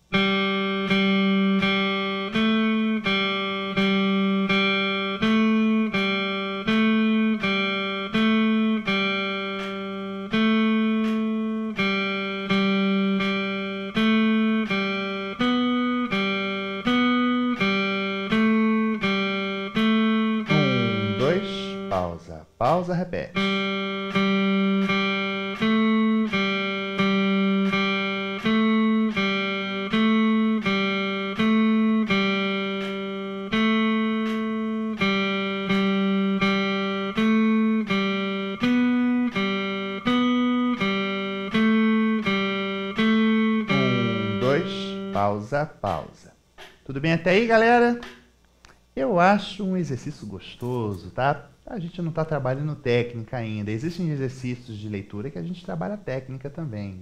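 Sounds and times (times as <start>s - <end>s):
guitar pitch slide: 0.0s - 22.2s, 23.4s - 46.7s
clean electric guitar notes: 0.0s - 22.3s, 23.4s - 46.1s
light metronome click: 32.7s - 36.0s.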